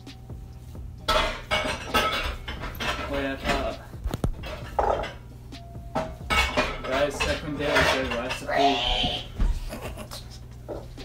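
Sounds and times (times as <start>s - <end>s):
glass ringing: 1.0s - 3.8s, 4.4s - 9.1s
voices talking: 6.6s - 10.6s.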